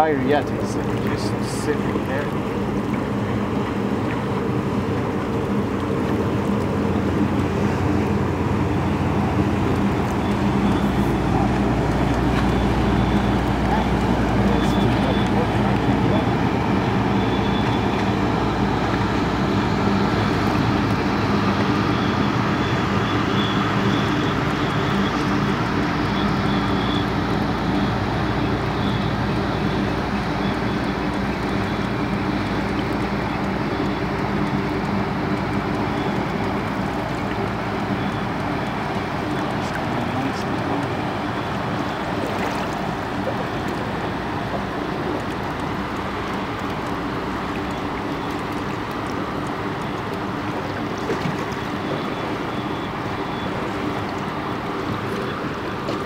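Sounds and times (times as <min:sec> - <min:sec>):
tugboat engine drone: 0:00.0 - 0:56.0.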